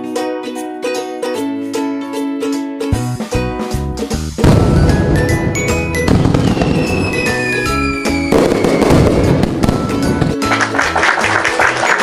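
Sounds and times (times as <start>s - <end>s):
upbeat background music: 1.3s - 12.0s
fireworks falling whistle: 4.4s - 10.3s
fireworks crackling bursts: 4.4s - 11.9s.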